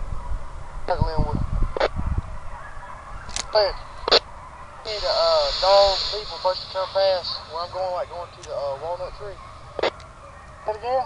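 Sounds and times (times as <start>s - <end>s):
hounds baying: 1.8s - 11.0s
steady high hiss: 4.8s - 9.9s.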